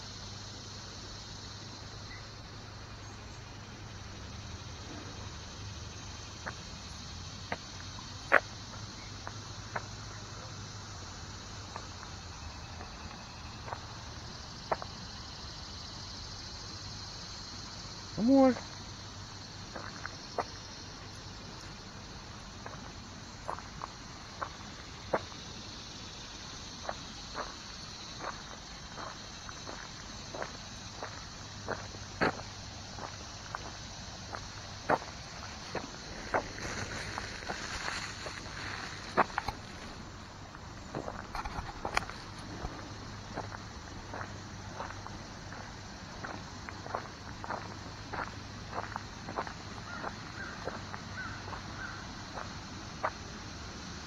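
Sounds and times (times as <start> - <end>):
insects droning: 0.0 - 54.0
footsteps on gravel path: 11.3 - 16.6, 18.5 - 53.2.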